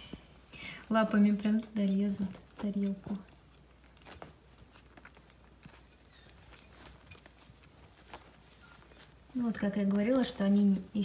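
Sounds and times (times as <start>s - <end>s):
puppies licking food off plate: 2.4s - 8.9s.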